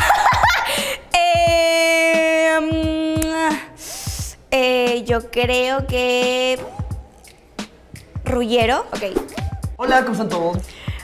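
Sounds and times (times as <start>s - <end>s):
soft low thumping beat: 1.2s - 11.0s.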